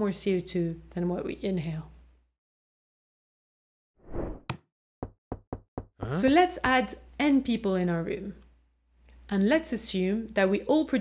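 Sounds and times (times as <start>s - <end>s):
knocking on a door: 5.0s - 6.0s.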